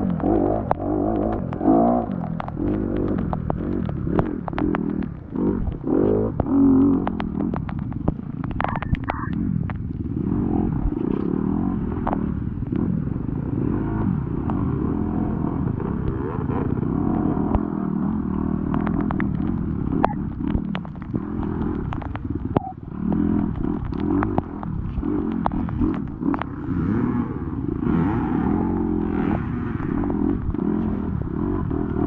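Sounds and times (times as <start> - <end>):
sharp clicks and knocks: 0.0 - 27.0
dirt bike engine revving: 0.0 - 32.0.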